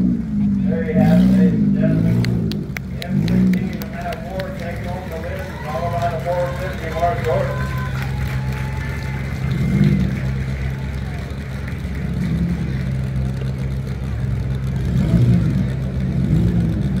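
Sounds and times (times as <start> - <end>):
car engines revving: 0.0 - 17.0.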